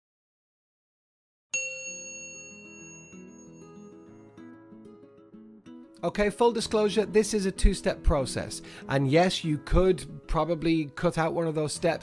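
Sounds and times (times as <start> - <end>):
bright chime ringing: 1.6 - 4.5.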